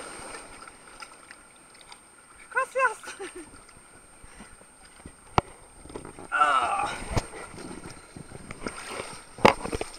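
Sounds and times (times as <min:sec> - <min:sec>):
water splashing: 0:00.0 - 0:09.9.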